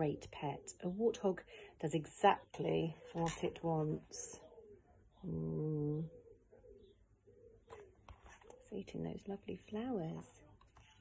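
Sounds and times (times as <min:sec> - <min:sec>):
bird cooing faintly: 0:04.2 - 0:08.8
soft rustle: 0:07.7 - 0:08.8, 0:10.2 - 0:11.0.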